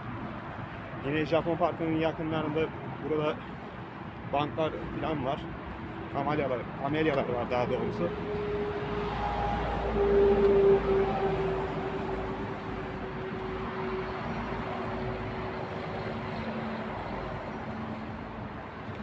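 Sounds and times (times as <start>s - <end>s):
passing vehicle motor hum: 7.6s - 19.0s.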